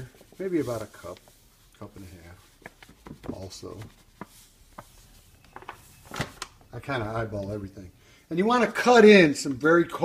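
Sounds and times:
packaging rustling: 2.6 - 6.8.

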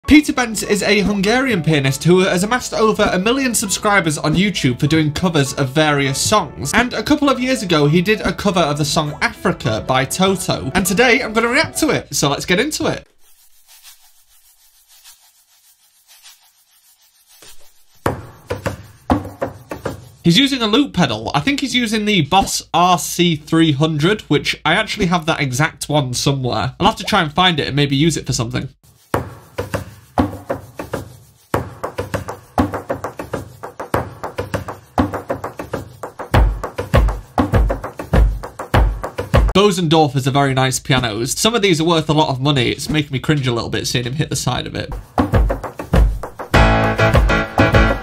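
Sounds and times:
hands brushing inside piano: 13.1 - 20.3, 28.8 - 39.4
percussive knocks on piano: 18.1 - 20.0, 31.6 - 39.5, 45.0 - 48.0.

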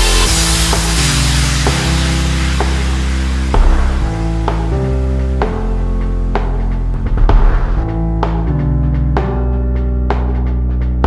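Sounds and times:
sustained chords over deep bass: 0.0 - 11.0.

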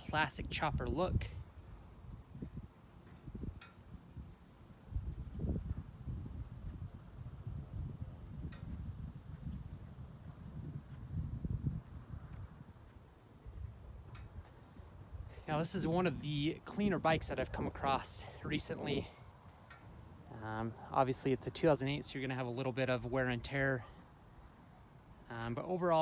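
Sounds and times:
wind buffeting microphone: 0.0 - 20.3.

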